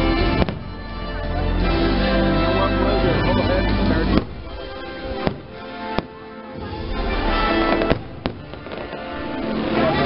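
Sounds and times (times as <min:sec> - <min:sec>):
music playing: 0:00.0 - 0:10.0
fireworks bangs: 0:00.1 - 0:00.9, 0:04.0 - 0:10.0.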